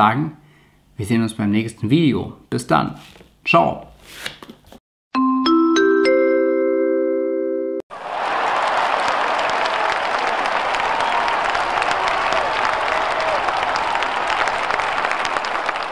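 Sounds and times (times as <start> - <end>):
mallet-struck chime: 5.2 - 7.8
crowd applauding: 7.9 - 15.9.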